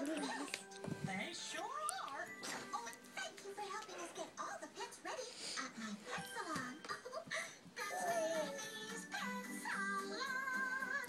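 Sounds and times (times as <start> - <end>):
music: 0.0 - 4.2, 7.8 - 11.0.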